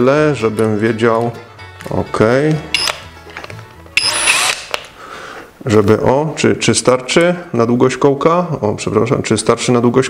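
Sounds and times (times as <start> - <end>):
drill chuck click: 2.8 - 3.0, 4.0 - 4.9
drill motor whining: 4.0 - 4.8.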